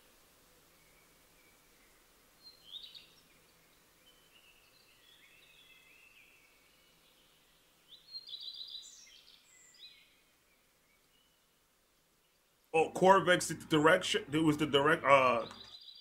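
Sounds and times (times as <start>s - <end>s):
birds chirping: 12.2s - 16.0s.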